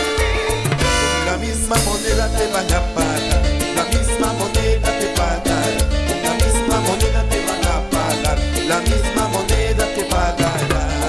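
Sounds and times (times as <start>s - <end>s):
bass line: 0.0s - 11.0s
quick percussion beat: 0.0s - 11.0s
salsa band playing: 0.0s - 11.0s.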